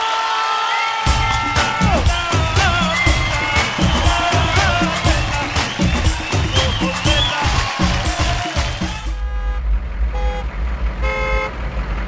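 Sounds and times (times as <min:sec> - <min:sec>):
vehicle horn tooting: 0:08.9 - 0:11.6
low rumble: 0:09.1 - 0:12.0.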